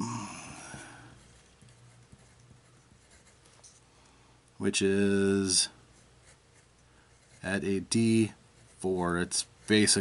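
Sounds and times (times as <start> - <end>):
pencil writing on paper: 1.2 - 3.4, 6.0 - 7.6.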